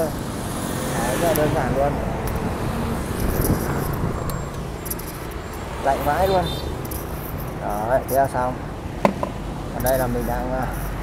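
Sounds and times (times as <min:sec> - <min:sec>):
motorbikes and cars passing: 0:00.0 - 0:11.0
street traffic rumble: 0:00.0 - 0:11.0.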